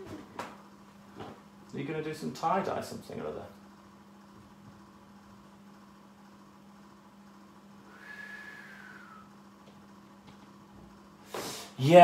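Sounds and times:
steady low hum: 0:00.0 - 0:12.0
faint whistle-like tone: 0:07.9 - 0:09.4.

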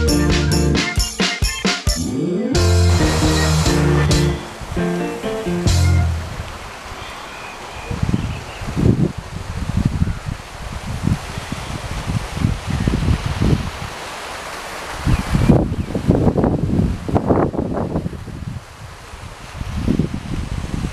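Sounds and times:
outdoor hiss: 0:00.0 - 0:07.9
wind buffeting microphone: 0:07.9 - 0:14.0, 0:15.0 - 0:20.9.

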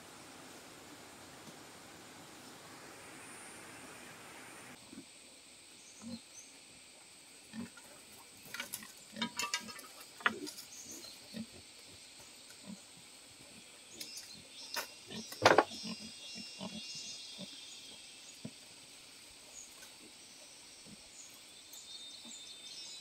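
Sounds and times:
steady hiss: 0:00.0 - 0:15.8, 0:16.9 - 0:23.0.

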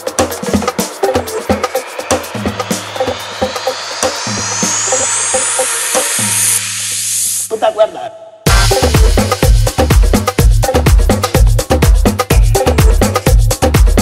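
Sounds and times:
pulsing bass line: 0:00.0 - 0:07.3, 0:08.5 - 0:14.0
tech house track: 0:00.0 - 0:14.0
rising synth sweep: 0:00.1 - 0:07.5.

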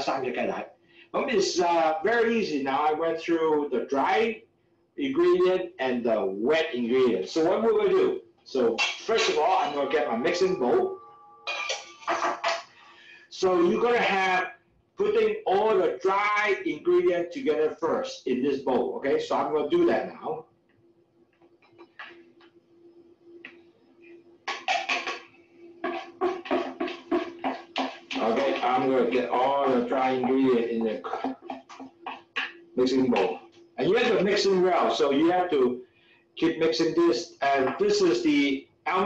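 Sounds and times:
man's voice: 0:00.0 - 0:00.6, 0:01.2 - 0:04.4, 0:05.0 - 0:11.0, 0:13.3 - 0:14.4, 0:15.0 - 0:20.4, 0:25.8 - 0:31.6, 0:32.8 - 0:35.8, 0:36.4 - 0:39.0
steady low hum: 0:00.0 - 0:39.0.

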